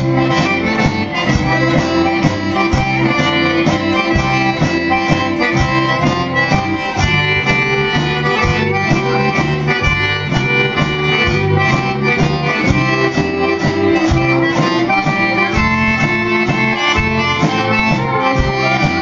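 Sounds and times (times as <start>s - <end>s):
button accordion: 0.0s - 19.0s
fiddle: 0.0s - 19.0s
live folk band playing: 0.0s - 19.0s
strummed guitars: 0.0s - 19.0s.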